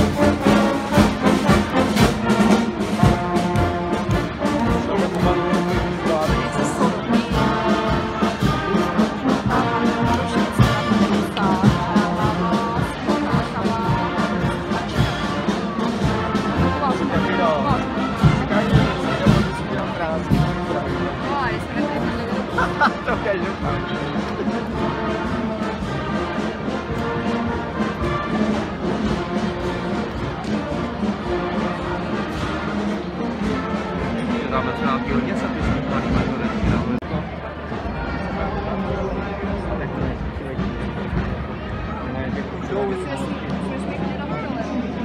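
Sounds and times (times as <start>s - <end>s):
bass drum beat: 0.0s - 24.0s
brass band playing a march: 0.0s - 45.0s.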